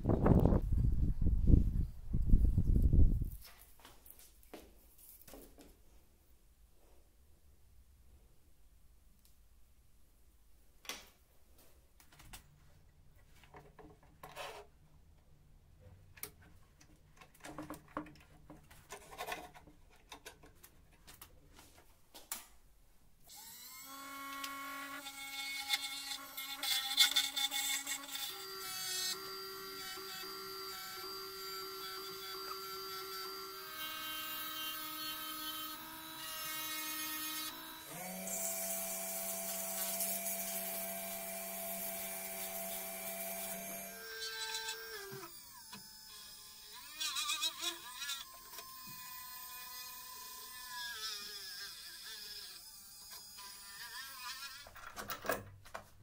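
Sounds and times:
wood lathe motor whining: 0:23.3 - 0:54.8.

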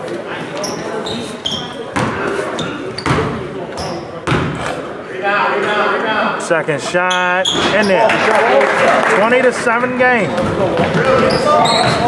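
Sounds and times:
voices echoing: 0:00.0 - 0:12.0
sneaker squeaks: 0:00.6 - 0:04.9, 0:07.0 - 0:08.0, 0:10.3 - 0:12.0
basketball bouncing on wooden floor: 0:02.0 - 0:02.2, 0:03.0 - 0:04.6, 0:10.3 - 0:12.0.

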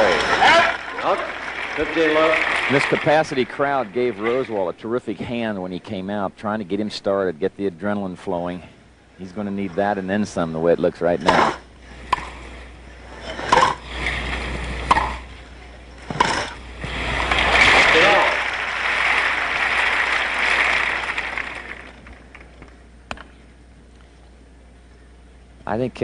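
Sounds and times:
crowd applauding: 0:00.0 - 0:04.8, 0:17.0 - 0:22.8
racket striking tennis ball: 0:14.9 - 0:15.3.

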